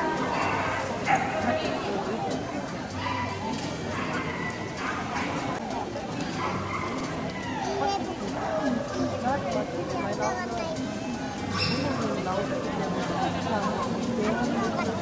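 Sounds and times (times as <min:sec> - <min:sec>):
dogs barking and yipping: 0:00.0 - 0:02.0, 0:02.8 - 0:09.2, 0:11.5 - 0:12.1
people talking in a hall: 0:00.0 - 0:15.0.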